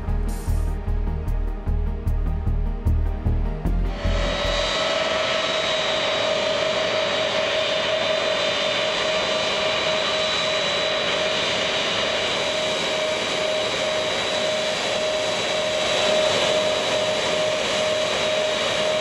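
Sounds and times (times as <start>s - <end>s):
jet engines whining at taxi power: 3.6s - 19.0s.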